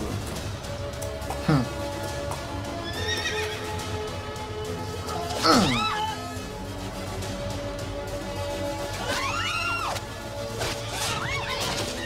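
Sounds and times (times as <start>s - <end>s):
soundtrack music: 0.0s - 12.0s
horse whinnying: 2.8s - 3.8s, 5.4s - 6.4s.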